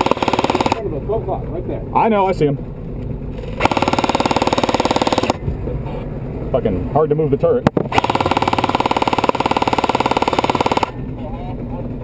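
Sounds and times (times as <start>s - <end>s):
airsoft rifle rapid fire: 0.0s - 0.9s, 3.6s - 5.4s, 7.9s - 11.0s
truck rumble: 0.0s - 12.0s.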